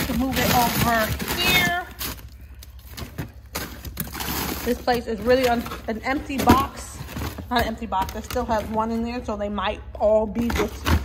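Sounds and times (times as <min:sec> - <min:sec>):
plastic bags and box rustling: 0:00.0 - 0:09.4.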